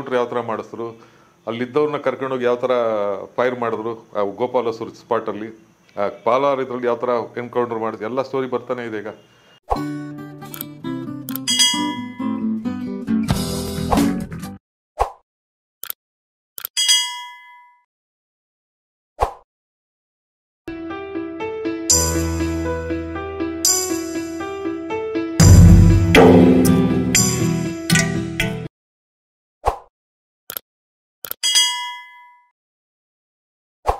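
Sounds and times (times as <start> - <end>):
mouse-click sound effects: 10.5 - 10.7
notification bell ding: 11.4 - 12.2
bell ding: 11.5 - 12.2, 16.8 - 17.8, 25.4 - 28.1, 31.4 - 32.5.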